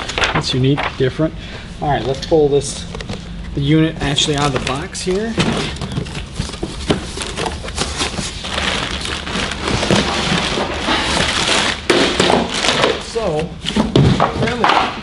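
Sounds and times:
cardboard flaps scraping: 4.0s - 13.1s
plastic wrapping crinkling: 4.0s - 13.4s.

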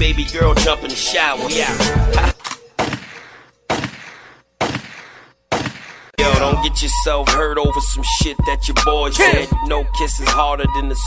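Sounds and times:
echoing gunshots: 2.8s - 6.2s.

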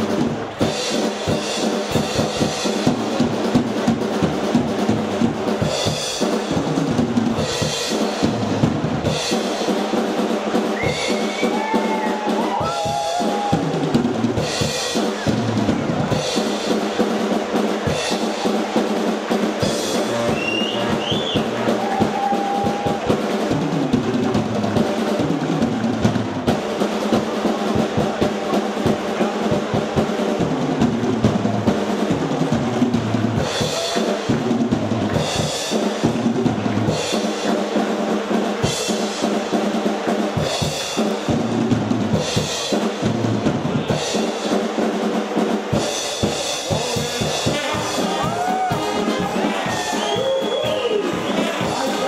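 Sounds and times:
drum rolls and fills: 0.0s - 52.0s.

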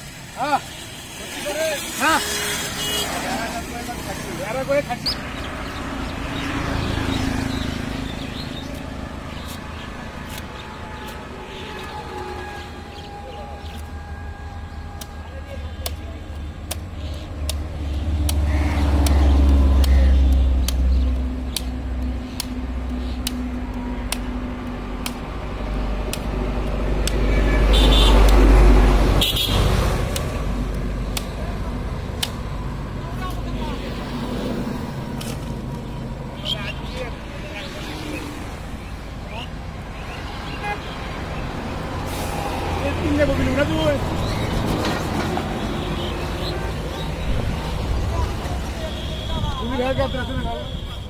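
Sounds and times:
vehicle engine rumble passing: 0.0s - 49.8s
car horn toot: 2.1s - 3.3s, 27.3s - 28.3s, 29.2s - 29.7s, 48.8s - 51.0s
sharp clicks: 15.8s - 25.4s, 26.0s - 27.4s, 30.0s - 31.5s, 32.1s - 32.5s.

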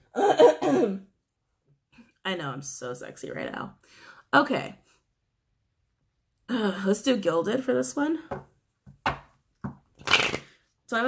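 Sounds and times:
cards being shuffled: 10.0s - 10.5s.

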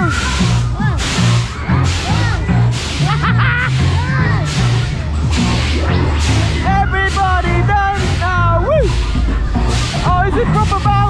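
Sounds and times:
fairground music with bass beat: 0.0s - 11.0s.

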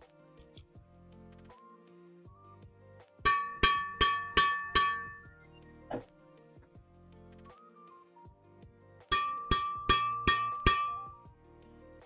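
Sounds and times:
hand striking racket strings: 3.3s - 5.3s, 9.1s - 11.2s.

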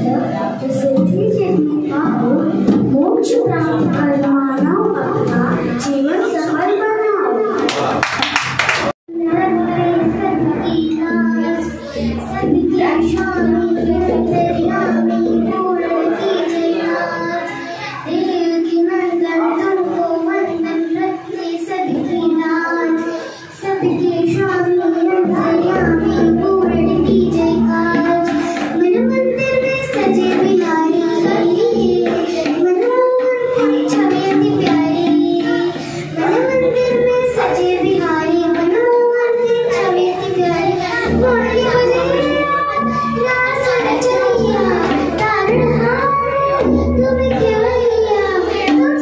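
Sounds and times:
girl singing into a microphone: 0.0s - 7.6s, 9.1s - 49.0s.

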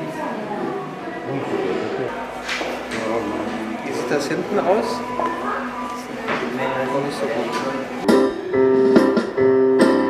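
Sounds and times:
indistinct voices: 0.0s - 8.8s
background music: 8.0s - 10.0s.

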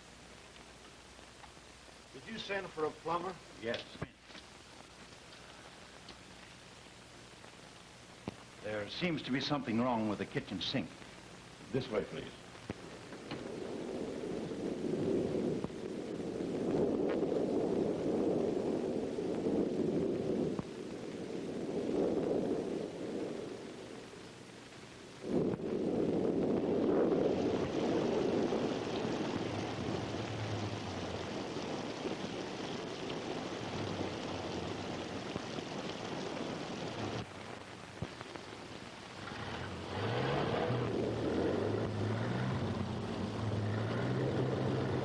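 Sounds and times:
steady higher hiss: 0.0s - 45.0s
storm wind gusts: 11.6s - 45.0s.

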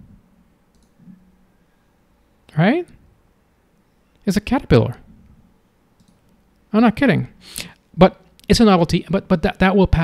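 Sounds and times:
computer mouse clicks: 0.7s - 1.1s, 6.0s - 6.4s.

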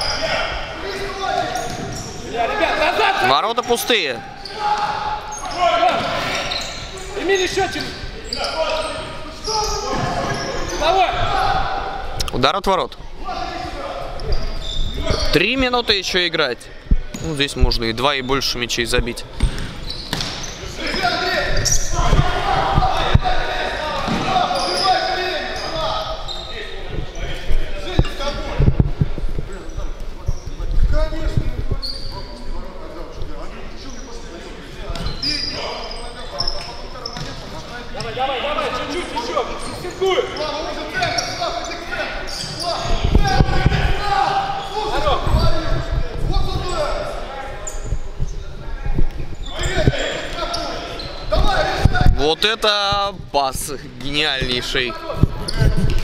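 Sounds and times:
voices calling: 0.0s - 12.3s, 13.0s - 28.6s, 33.1s - 56.0s.

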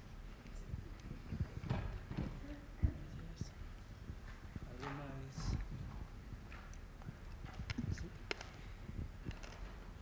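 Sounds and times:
low thuds and knocks: 1.4s - 3.0s.

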